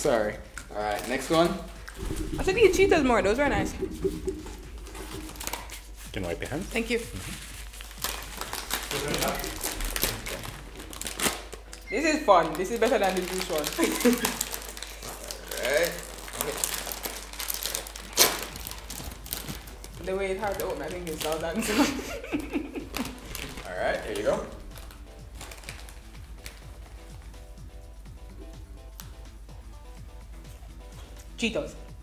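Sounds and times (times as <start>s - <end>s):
plastic snack bag crinkling: 7.7s - 21.6s, 22.9s - 27.1s.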